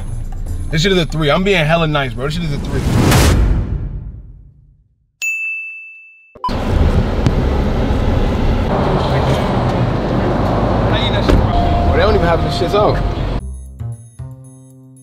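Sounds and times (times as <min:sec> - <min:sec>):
traffic roar: 0:06.5 - 0:13.4
wind: 0:06.5 - 0:13.4.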